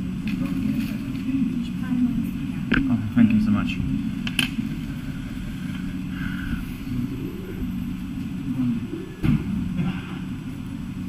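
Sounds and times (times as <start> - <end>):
bus diesel engine running: 0.0 - 11.0.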